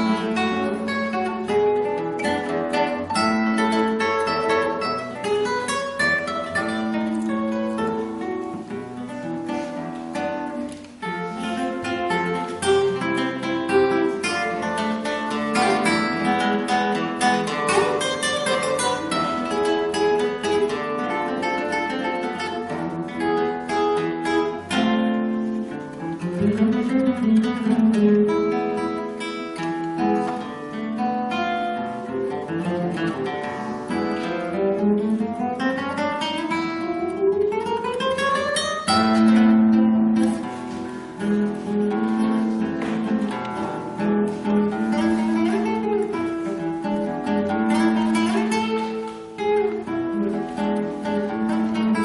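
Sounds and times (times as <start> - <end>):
classical guitar fingerstyle: 0.0 - 52.0.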